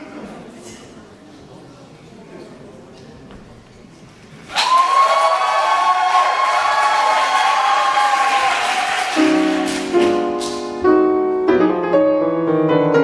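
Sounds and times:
audience applauding and cheering: 4.4 - 10.7.

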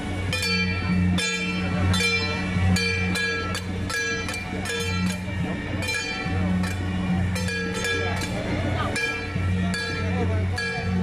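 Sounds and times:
crowd chatter: 0.0 - 11.0
metal percussion strokes: 0.0 - 11.0.

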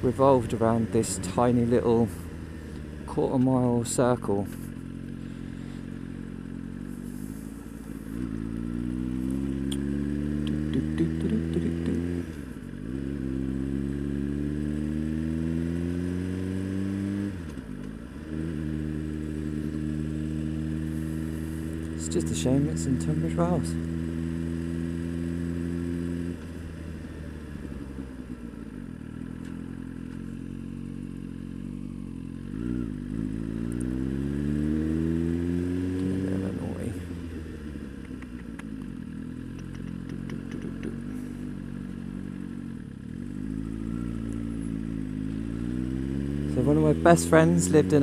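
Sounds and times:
motorcycle engine revving: 0.0 - 48.0.

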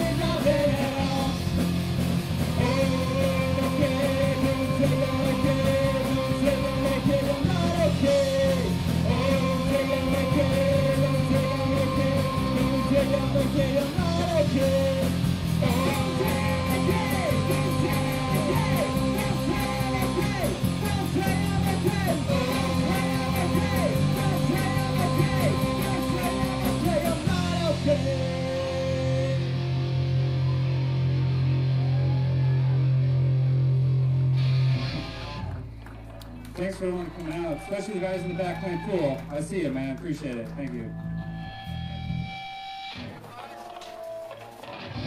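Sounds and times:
live rock band playing: 0.0 - 45.0.

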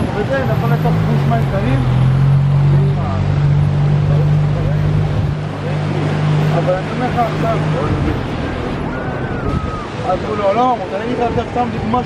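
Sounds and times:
engine droning: 0.0 - 10.9
faint voices: 0.0 - 12.0.

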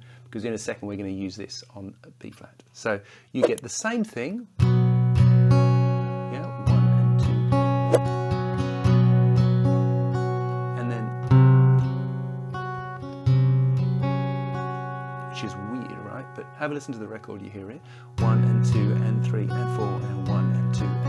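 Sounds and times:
acoustic guitar strumming chords: 4.7 - 21.0.

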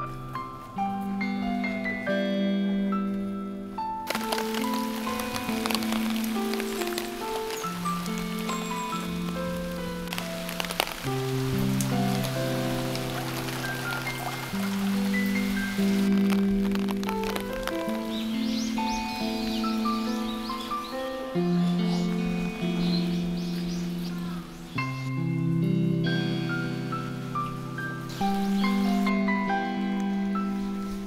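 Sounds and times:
calm music of held notes: 0.0 - 31.0
rain patter: 4.0 - 31.0
water drips: 4.1 - 29.2.

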